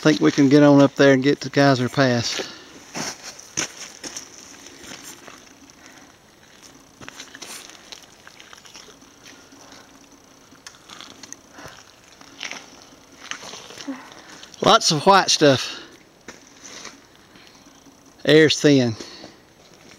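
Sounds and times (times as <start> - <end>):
footsteps on wet snow and mud: 2.2 - 9.6.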